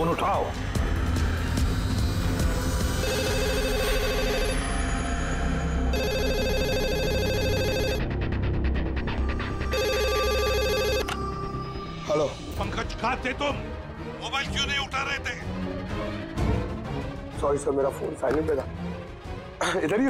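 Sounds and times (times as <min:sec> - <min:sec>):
tense background music: 0:00.0 - 0:20.0
telephone ringing: 0:03.0 - 0:04.7, 0:05.9 - 0:08.0, 0:09.7 - 0:11.2.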